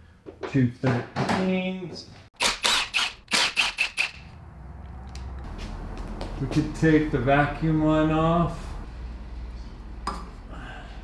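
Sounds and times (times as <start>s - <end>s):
power wrench rattling bursts: 2.4s - 4.3s.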